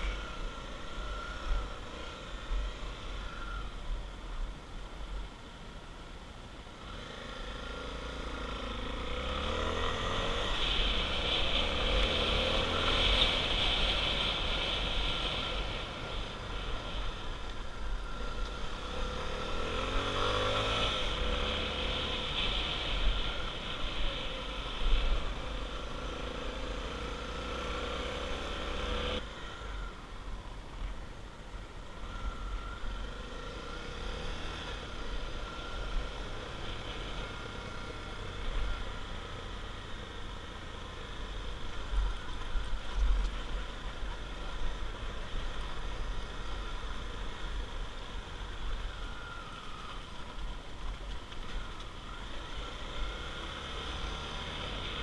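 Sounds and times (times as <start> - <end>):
motorcycle engine revving: 6.8 - 29.9, 31.9 - 55.0.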